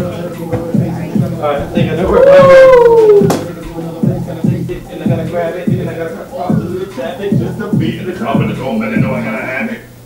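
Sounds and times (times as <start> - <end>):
music with steady beat: 0.0 - 9.6
howl-like call: 2.0 - 3.3.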